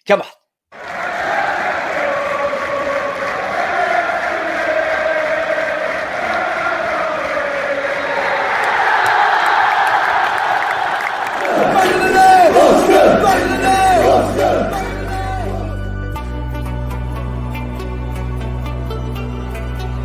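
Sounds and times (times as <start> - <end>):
football crowd chanting: 0.8 - 15.8.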